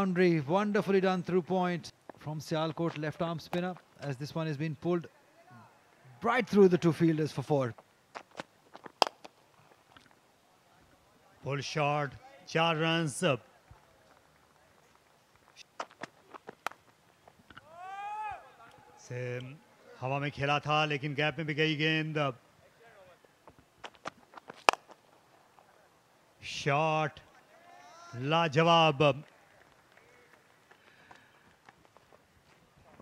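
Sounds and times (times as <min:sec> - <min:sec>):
cricket bat hitting ball: 0:09.0 - 0:09.3, 0:24.5 - 0:25.0.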